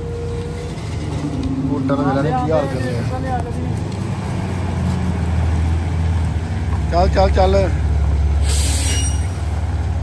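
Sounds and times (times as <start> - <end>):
diesel engine rumbling: 0.0 - 10.0.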